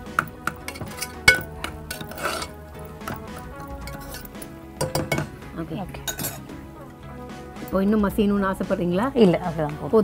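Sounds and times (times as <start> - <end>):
metal spoon clinking pot: 0.0 - 5.4, 6.0 - 6.5
background music: 0.0 - 10.0.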